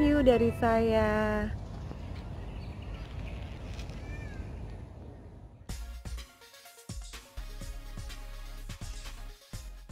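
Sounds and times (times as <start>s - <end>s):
music: 0.0s - 1.3s, 5.7s - 9.9s
wind rumble on microphone: 0.6s - 5.7s.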